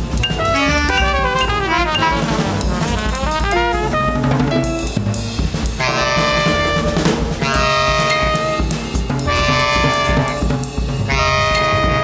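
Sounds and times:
drum kit pulse: 0.0 - 12.0
long held horn notes: 0.4 - 4.8, 5.8 - 10.5, 11.1 - 12.0.

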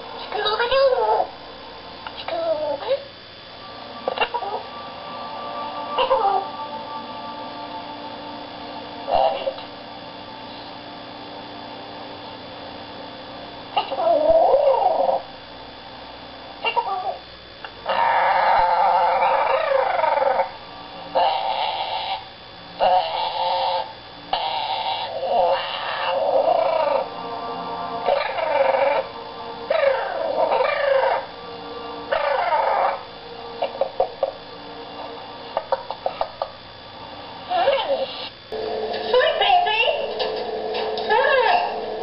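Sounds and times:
parrot squawks: 0.2 - 1.3, 4.0 - 4.6, 6.0 - 6.5, 9.1 - 9.7, 17.9 - 20.5, 21.1 - 27.1, 28.0 - 29.1, 29.7 - 31.3, 32.1 - 34.4, 35.6 - 36.5, 37.5 - 38.3, 41.0 - 41.9.

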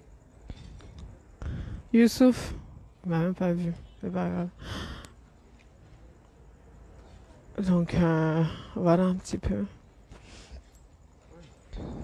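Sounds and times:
faint indistinct voices: 0.0 - 8.5, 9.7 - 12.0.

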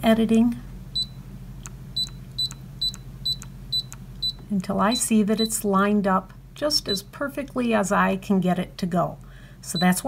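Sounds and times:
touchscreen beeping: 2.0 - 5.5.

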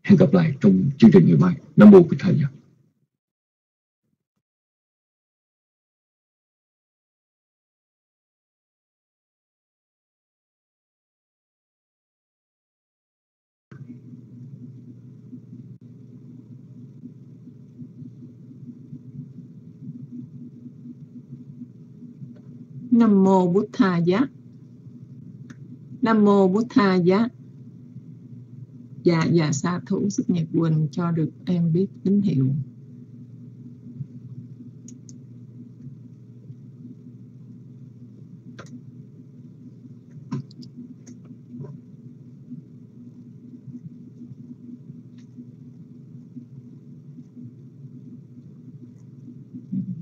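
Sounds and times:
microphone hum and rumble: 13.8 - 50.0.

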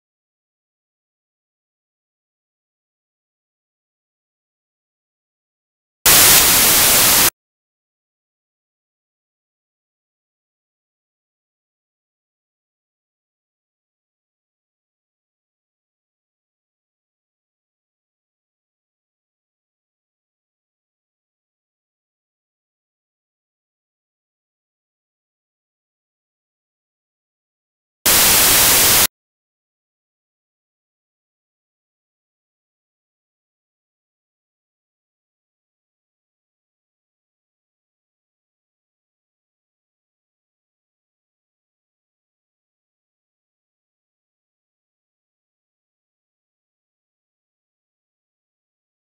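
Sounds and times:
static hiss burst: 6.1 - 7.3, 28.1 - 29.1.

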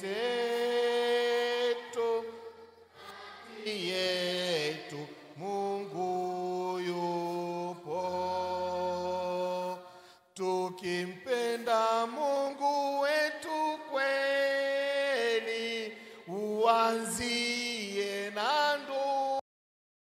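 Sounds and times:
man singing a hymn: 0.0 - 2.7, 3.4 - 19.4.

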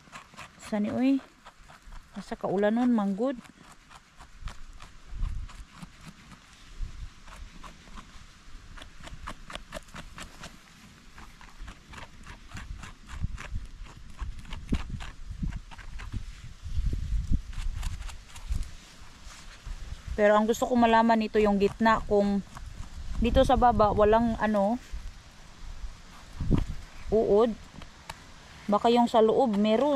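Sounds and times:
knife scraping mushroom stem: 0.0 - 25.1, 25.9 - 29.9.

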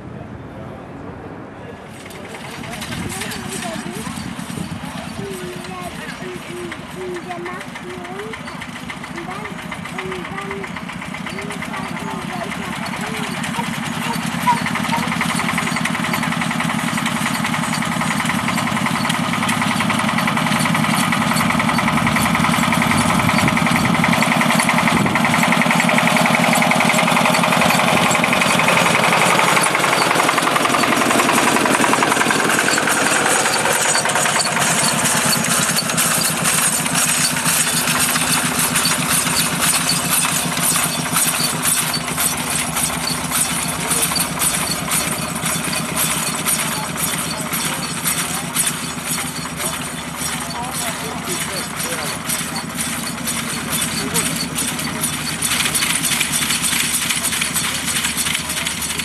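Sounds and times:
tractor diesel engine running: 1.8 - 59.0
tedder tines rattling: 1.9 - 59.0.

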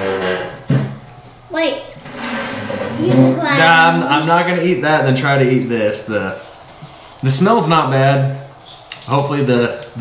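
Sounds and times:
high-pitched voice: 3.0 - 3.8.

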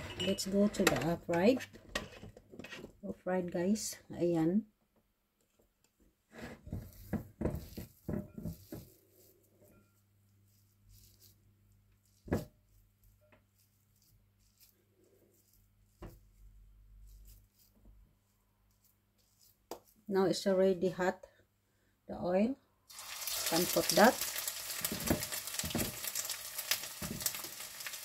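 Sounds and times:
handling knocks and rustles: 6.4 - 10.0, 24.8 - 27.6.

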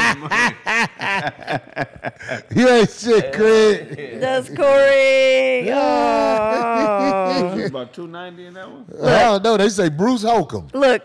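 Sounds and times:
man laughing into a microphone: 0.0 - 2.7, 6.2 - 7.8.

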